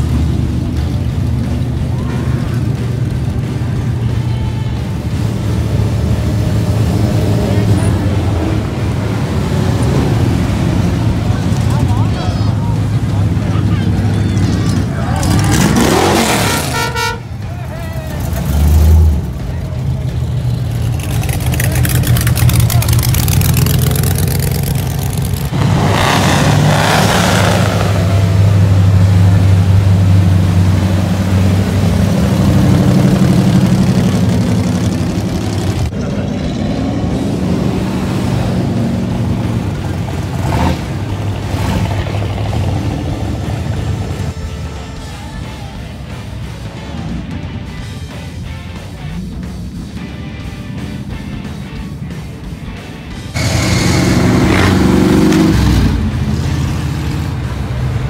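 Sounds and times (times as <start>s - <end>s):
car engines rumbling past: 0.0s - 58.0s.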